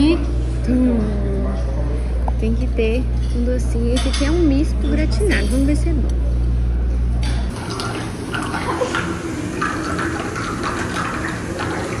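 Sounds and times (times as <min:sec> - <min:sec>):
water churning and bubbling: 0:07.5 - 0:12.0.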